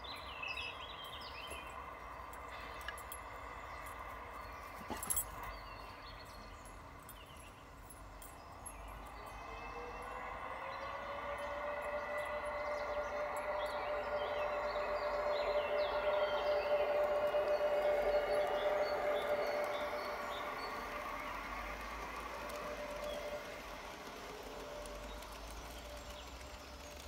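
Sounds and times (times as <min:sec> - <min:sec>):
birds chirping: 0:00.0 - 0:27.0
model train motor whine: 0:00.0 - 0:27.0
wheels rolling on track: 0:00.0 - 0:27.0.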